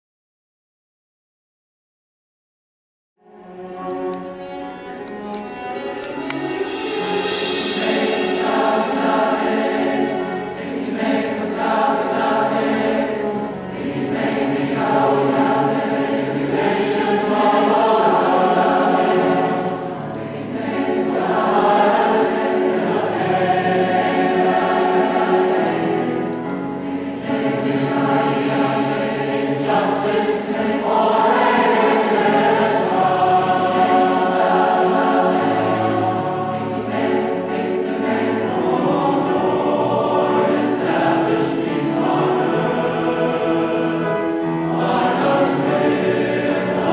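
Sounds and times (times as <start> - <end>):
cello: 3.2 - 46.9
choir singing: 3.2 - 46.9
piano: 3.2 - 46.9.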